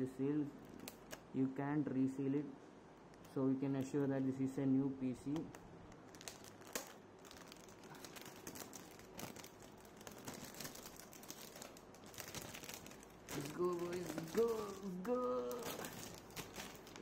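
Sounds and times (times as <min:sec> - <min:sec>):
plastic bag crinkling: 0:05.5 - 0:17.0.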